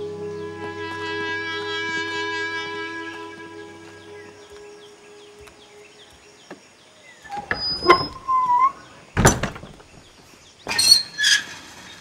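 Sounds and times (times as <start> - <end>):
held music chord: 0.0 - 6.4
faint chirping: 0.0 - 12.0
door hinge creak: 7.2 - 10.1.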